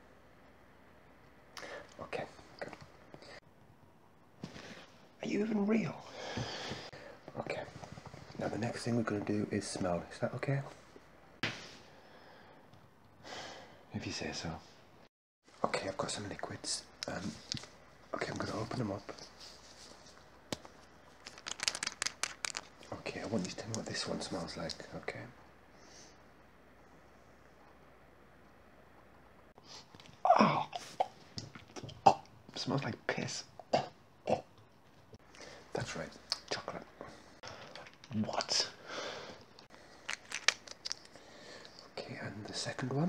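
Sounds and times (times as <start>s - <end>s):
microphone handling rustle: 7.6s - 8.5s
plastic bottle caps clicking: 21.2s - 22.7s
sharp clicks and crackles: 21.2s - 22.8s, 39.6s - 41.9s.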